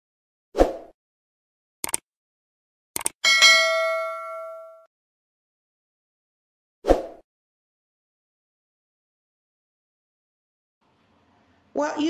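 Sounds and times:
double mouse click: 1.8 - 2.0
notification bell ding: 3.2 - 4.9.

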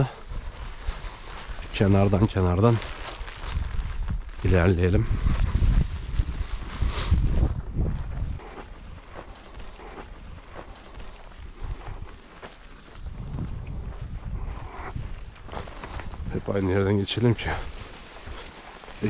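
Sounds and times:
wind rumble on microphone: 0.0 - 18.4
footsteps through tall grass: 0.0 - 19.0.

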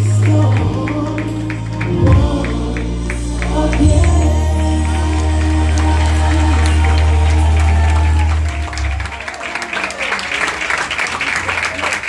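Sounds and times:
worship song over loudspeakers: 0.0 - 9.1
congregation applauding: 0.0 - 12.0.

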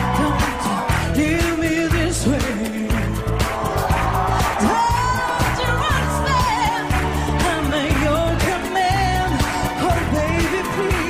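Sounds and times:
woman singing: 0.0 - 3.2, 4.4 - 11.0
pop backing track with heavy bass: 0.0 - 11.0.

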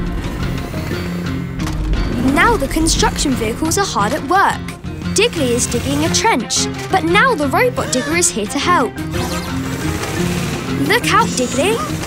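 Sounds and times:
cartoon background music: 0.0 - 12.0
machines digging: 0.0 - 12.0.

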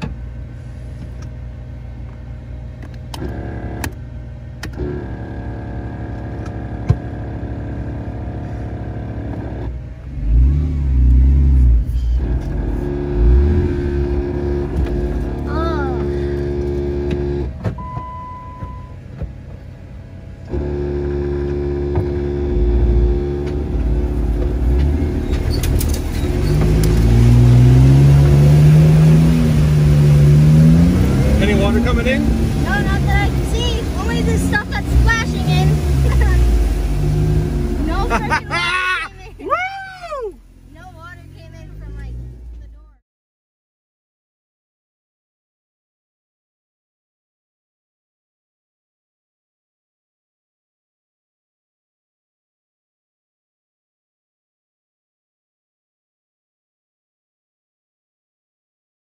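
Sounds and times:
car engine revving: 1.9 - 17.7, 19.2 - 43.0.

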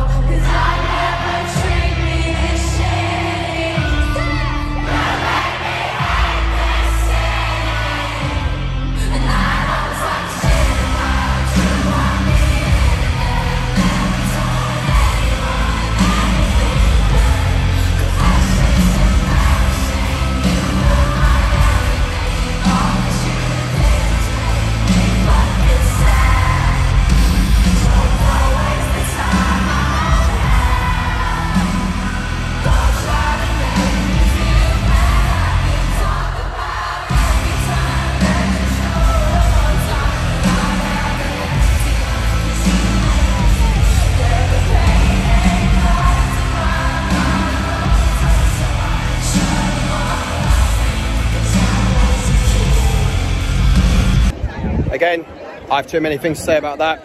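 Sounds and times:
crowd yelling along: 0.0 - 57.0
live pop music with vocals: 0.0 - 57.0.

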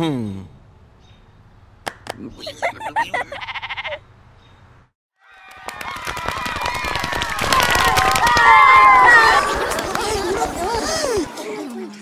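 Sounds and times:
girl laughing: 2.2 - 4.0, 9.2 - 11.3
sheep bleating: 3.3 - 4.0.

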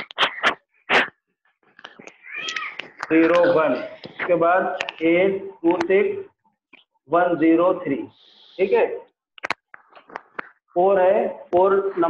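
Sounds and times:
marker squeaking on a whiteboard: 0.0 - 5.1.

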